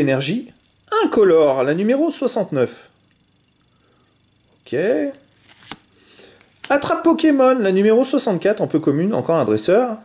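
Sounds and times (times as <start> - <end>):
trading card rustle and snap: 5.3 - 6.8.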